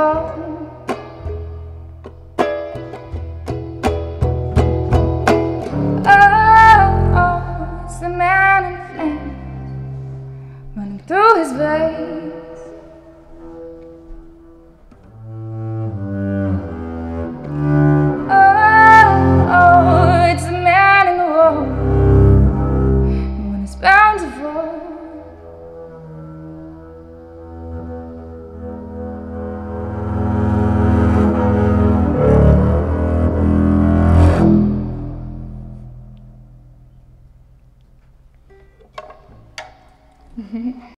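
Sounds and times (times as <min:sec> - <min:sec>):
soft ukulele: 0:00.0 - 0:08.4
double bass sustained notes: 0:00.0 - 0:40.9
woman singing wordless vocals: 0:06.0 - 0:09.4, 0:10.8 - 0:12.8, 0:23.4 - 0:25.2.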